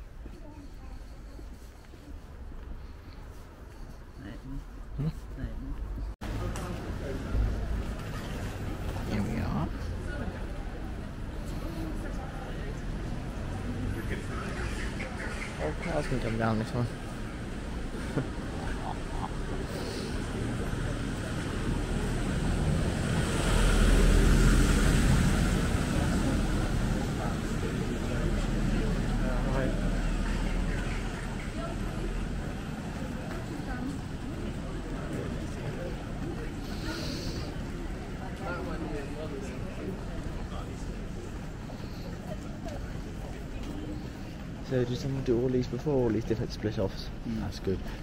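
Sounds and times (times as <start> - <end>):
faint street ambience: 0.0 - 48.0.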